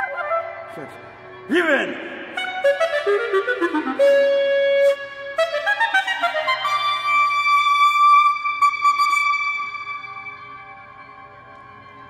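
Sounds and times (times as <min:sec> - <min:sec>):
clarinet high note: 0:00.0 - 0:10.4.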